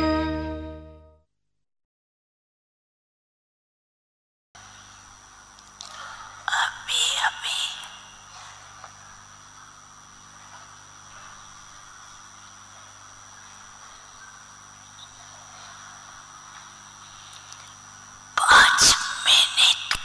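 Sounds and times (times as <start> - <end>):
faint hiss: 4.6 - 20.0
low electrical hum: 4.6 - 20.0
thin high whine: 4.6 - 20.0.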